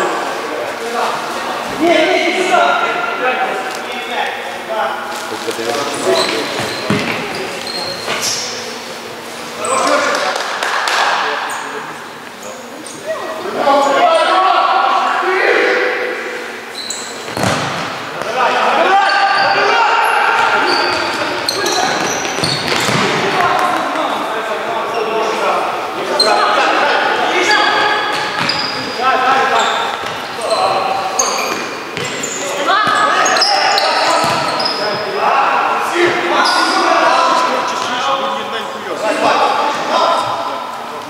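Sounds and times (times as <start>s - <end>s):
shoes squeaking on floor: 5.8s - 8.6s, 16.7s - 17.6s, 18.8s - 23.4s, 26.1s - 35.2s, 36.0s - 38.0s
players calling out: 12.4s - 38.1s
ball struck and bouncing: 17.3s - 17.9s, 22.7s - 23.2s.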